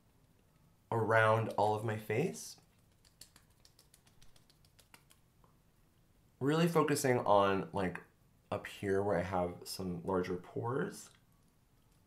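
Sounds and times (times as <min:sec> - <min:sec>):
fingertips tapping on skin: 0:02.7 - 0:05.2.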